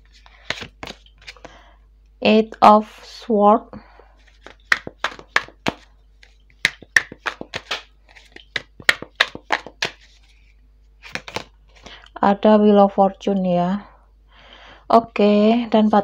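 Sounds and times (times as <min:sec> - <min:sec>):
cards being shuffled: 0:00.0 - 0:01.6, 0:04.2 - 0:12.0.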